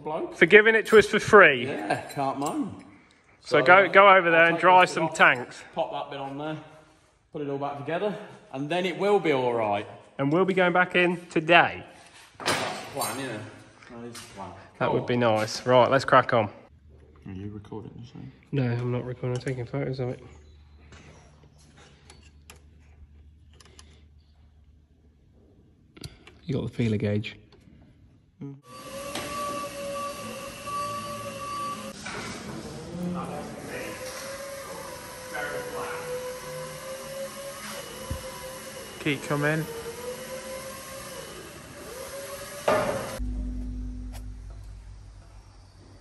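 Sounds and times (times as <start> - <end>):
forklift whining: 28.7 - 46.0
loud metallic clank: 42.7 - 46.0
low steady hum: 43.2 - 46.0.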